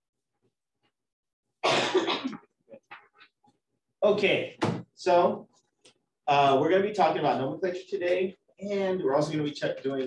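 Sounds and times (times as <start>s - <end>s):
person coughing: 1.6s - 2.5s.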